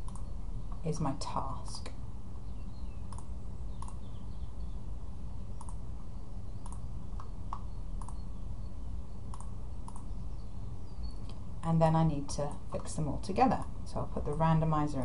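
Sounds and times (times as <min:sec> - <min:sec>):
computer mouse clicking: 0:00.0 - 0:00.8, 0:03.1 - 0:04.1, 0:05.6 - 0:05.8, 0:06.6 - 0:08.2, 0:09.3 - 0:10.1
steady low hum: 0:00.0 - 0:15.0.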